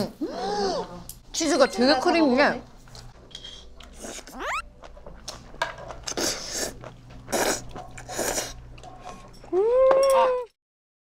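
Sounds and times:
person slurping food: 0:06.1 - 0:08.6.

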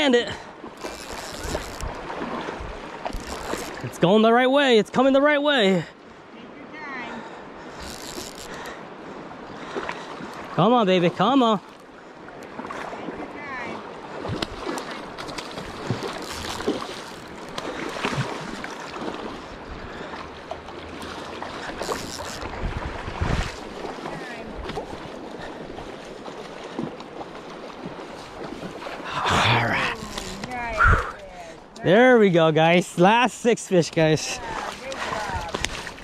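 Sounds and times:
river water lapping and splashing: 0:00.0 - 0:36.0
wind on microphone: 0:21.9 - 0:23.7, 0:29.2 - 0:31.3.

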